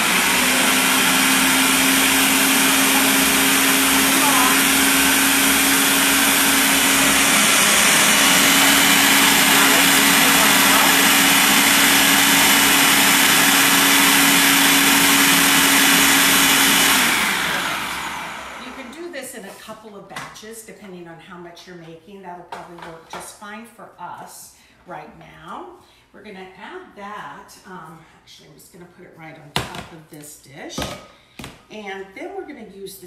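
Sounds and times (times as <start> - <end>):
food processor chopping: 0.0 - 19.0.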